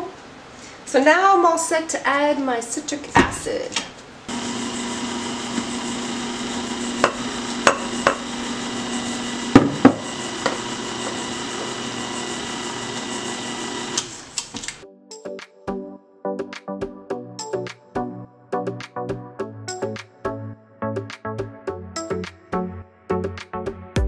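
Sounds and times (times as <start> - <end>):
stand mixer motor hum: 4.3 - 14.7
music: 14.8 - 24.0.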